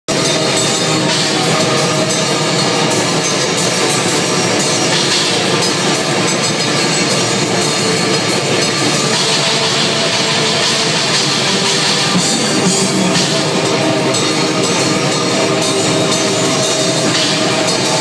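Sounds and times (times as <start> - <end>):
metal band playing live: 0.1 - 18.0
rapid cymbal strokes: 0.1 - 18.0.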